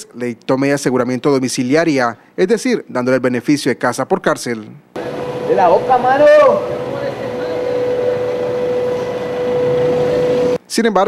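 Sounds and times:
mid-pitched hum: 4.9s - 10.6s
street background noise: 4.9s - 10.6s.

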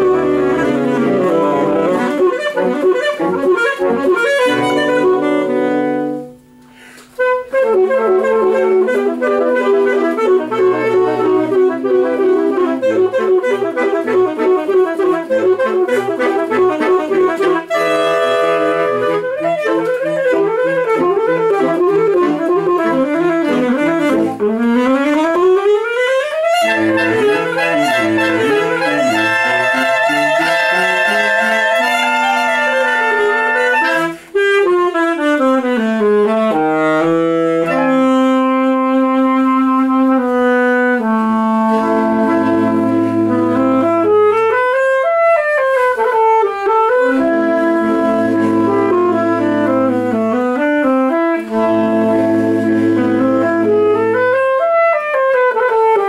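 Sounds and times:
saxophone ensemble playing: 0.0s - 56.0s.

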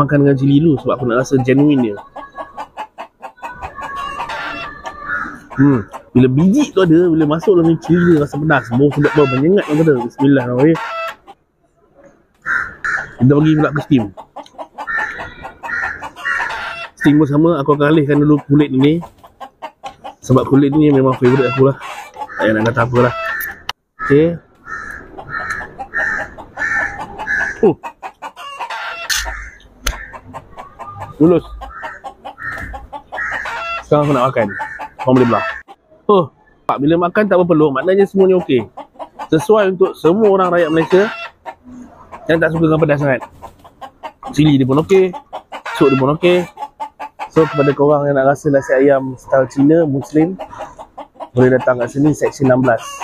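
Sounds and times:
chicken clucking: 0.0s - 53.0s.

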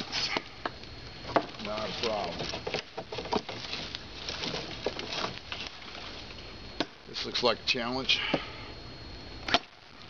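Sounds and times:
twigs cracking: 0.0s - 7.1s
dry leaves crunching underfoot: 1.6s - 6.3s.

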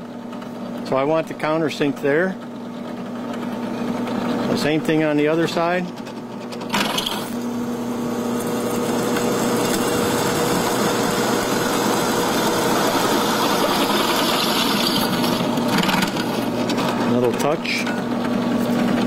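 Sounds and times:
drill press motor hum: 0.0s - 19.0s
drill bit cutting steel: 8.7s - 16.4s.

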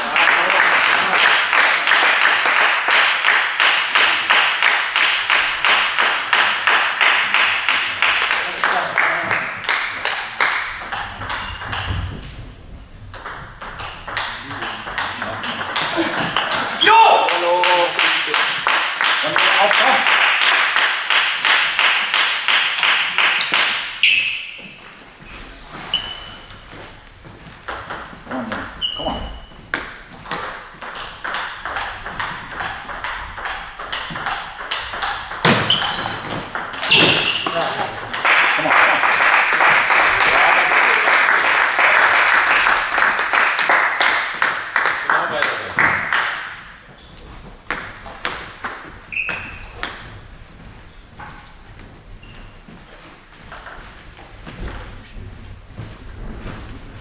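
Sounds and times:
spectators applauding: 0.0s - 10.8s, 17.2s - 23.7s, 37.5s - 46.5s
table tennis ball pinging: 9.8s - 12.4s, 13.1s - 16.8s, 27.7s - 38.2s, 47.7s - 50.2s.

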